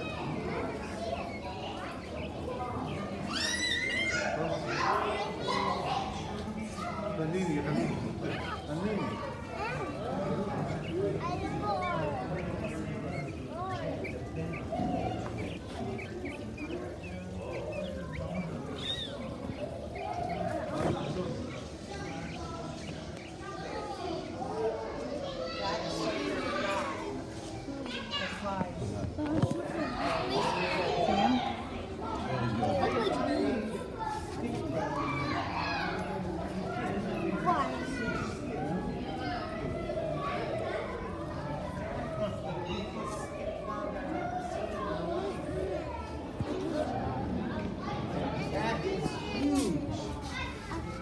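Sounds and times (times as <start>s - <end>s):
children talking and calling out: 0.0s - 51.0s.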